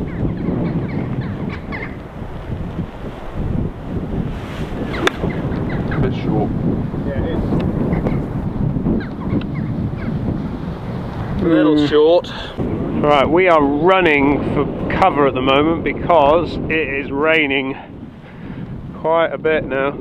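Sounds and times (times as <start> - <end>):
wind buffeting microphone: 0.0 - 20.0
golf club striking ball: 4.8 - 5.7.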